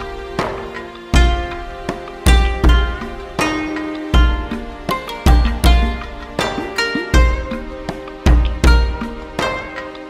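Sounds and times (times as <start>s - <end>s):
plucked string notes: 0.0s - 10.0s.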